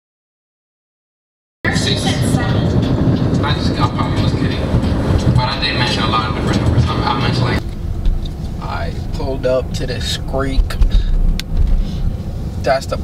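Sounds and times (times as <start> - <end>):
car road and engine noise: 1.6 - 13.0
faint voices: 1.7 - 7.6.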